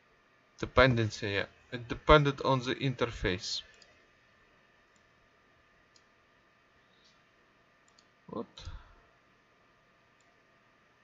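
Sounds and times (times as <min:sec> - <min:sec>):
faint computer mouse clicks: 0:05.9 - 0:06.1, 0:07.8 - 0:08.1, 0:10.2 - 0:10.4.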